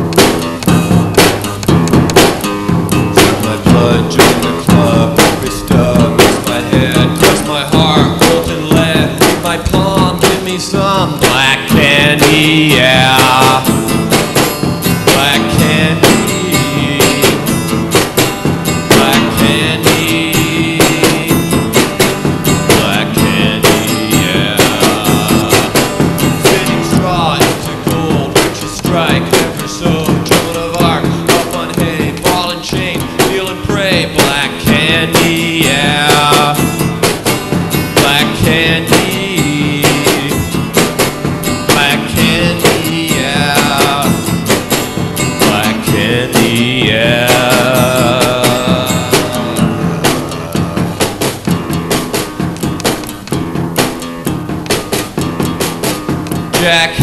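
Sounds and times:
drum beat: 0.0 - 57.0
electric guitar: 0.0 - 57.0
man singing: 2.9 - 52.1, 56.4 - 57.0.

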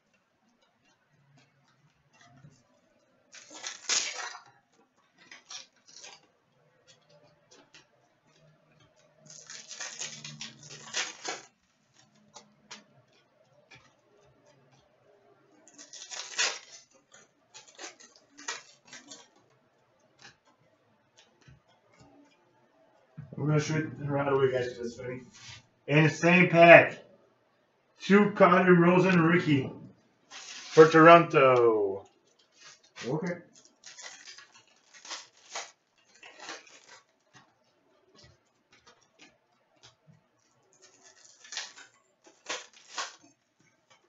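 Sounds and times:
cards sliding and flicking: 30.3 - 31.0.

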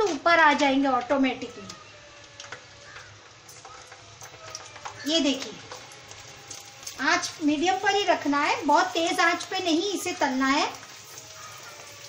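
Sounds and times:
food deep-frying in oil: 0.0 - 12.0.

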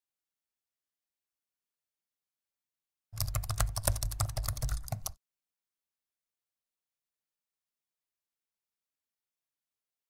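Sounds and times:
rapid keyboard typing: 3.2 - 5.2.

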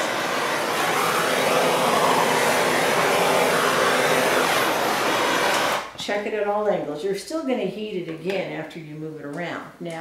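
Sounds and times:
torch flame hissing: 0.0 - 6.0.

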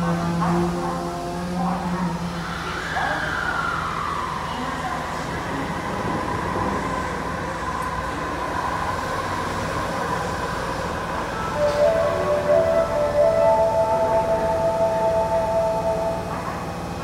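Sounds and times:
low train rumble: 0.0 - 17.0
train braking with inverter whine: 0.0 - 17.0.

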